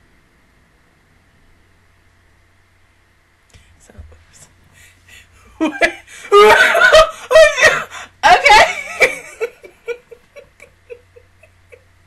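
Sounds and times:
stifled laugh: 5.1s - 11.9s.

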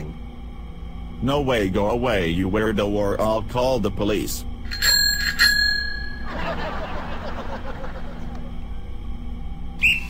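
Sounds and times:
small bell ringing: 4.6s - 6.4s.

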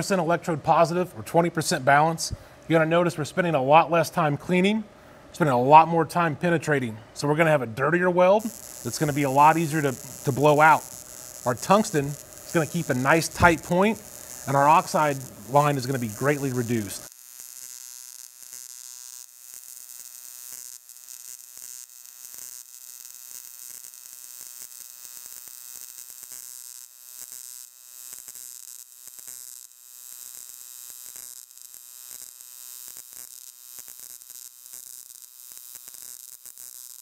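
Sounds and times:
welding arc buzzing and crackling: 6.8s - 37.0s.

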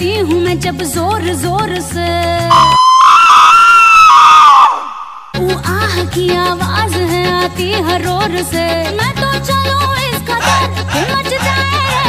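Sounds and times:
high-pitched scream: 2.5s - 5.4s.

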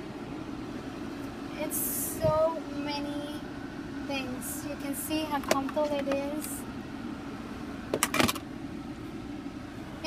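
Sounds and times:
car cabin hum: 0.0s - 10.0s.

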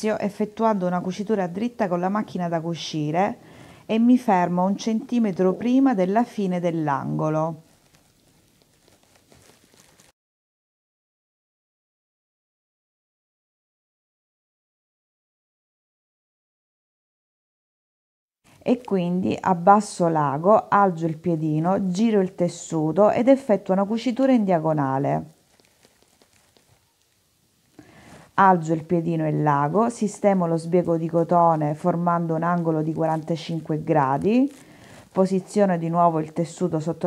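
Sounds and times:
fabric rustling at sewing machine: 4.5s - 10.2s, 23.8s - 27.2s, 29.4s - 37.0s.

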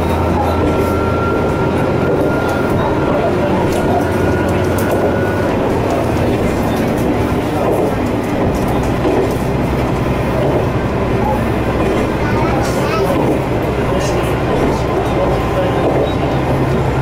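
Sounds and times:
diesel railcar engine drone: 0.0s - 17.0s
wheel-on-rail noise: 0.0s - 17.0s.

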